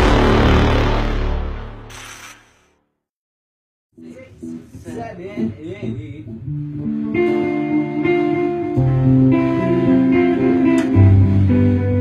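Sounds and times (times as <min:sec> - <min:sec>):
guitar chords plucked and strummed: 0:04.0 - 0:12.0.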